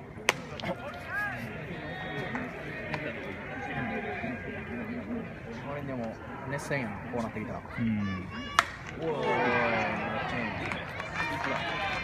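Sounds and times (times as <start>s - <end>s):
baseball hitting glove crack: 0.2s - 0.8s, 8.5s - 8.9s.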